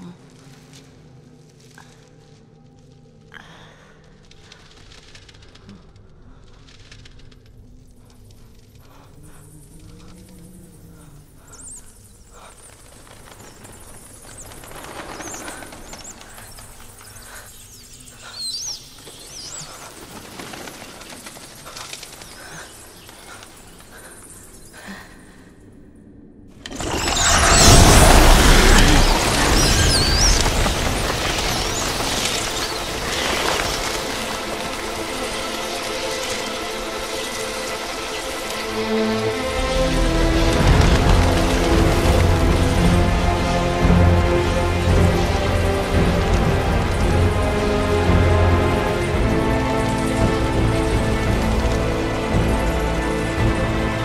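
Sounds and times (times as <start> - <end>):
flapping wings: 3.6 - 25.0, 26.7 - 54.0
bats squeaking: 9.2 - 24.9, 26.7 - 38.6
rushing sound effects: 26.6 - 35.1
orchestral score of held tones: 32.9 - 54.0.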